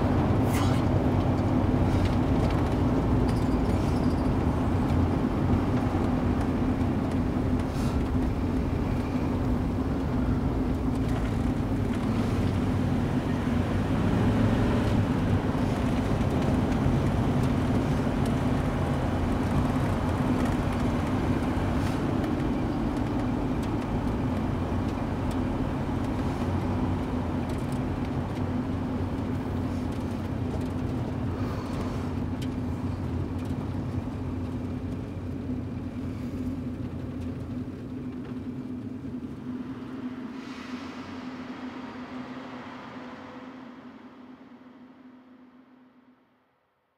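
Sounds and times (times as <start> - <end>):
car engine and road rumble: 0.0 - 46.9.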